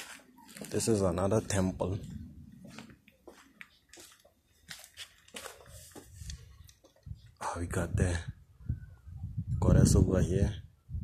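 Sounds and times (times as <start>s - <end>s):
footsteps crunching on dirt path: 0.0s - 7.0s.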